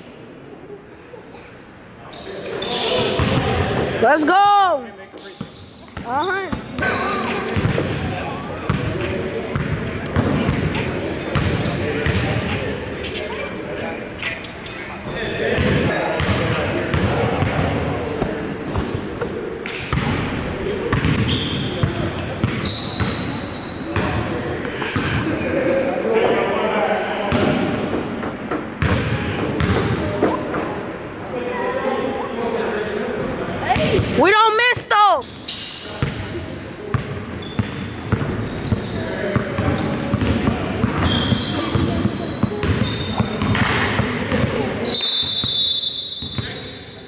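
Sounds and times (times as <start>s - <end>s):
indistinct echoing voices: 0.0s - 45.3s.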